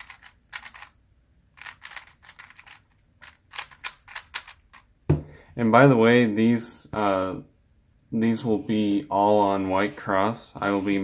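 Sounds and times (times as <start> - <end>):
puzzle cube plastic clicks: 0.0 - 5.0.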